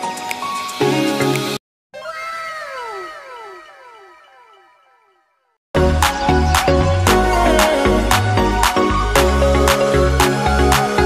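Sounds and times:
echoing meow-like cry: 2.0 - 4.3.

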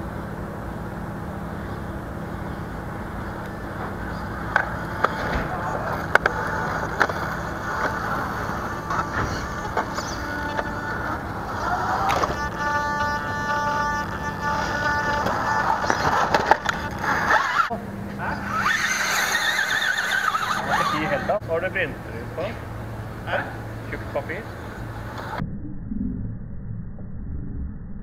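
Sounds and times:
steady tone: 0.0 - 28.0
background chatter: 3.1 - 18.9
music: 4.8 - 17.7.

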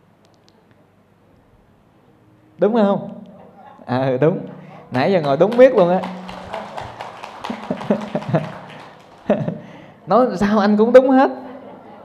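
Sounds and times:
audience clapping: 4.9 - 9.8.

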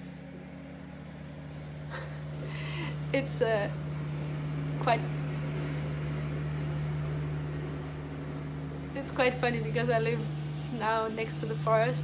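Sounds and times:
lawn mower engine running: 0.0 - 12.0.

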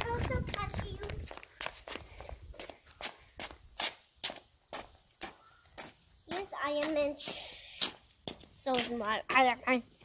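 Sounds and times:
footsteps on brick paving: 0.0 - 10.0.

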